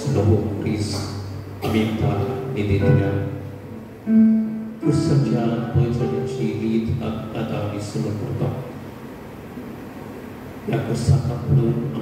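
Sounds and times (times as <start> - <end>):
sound system hum: 0.0 - 12.0
choir chord with instruments: 1.6 - 6.6.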